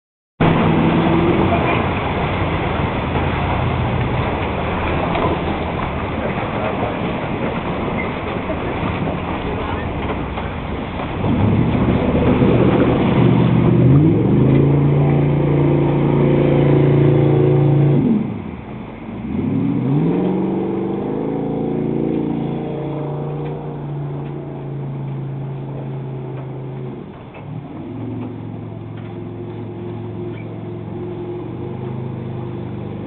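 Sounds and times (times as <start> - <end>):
personal watercraft engine revving: 0.4 - 33.0.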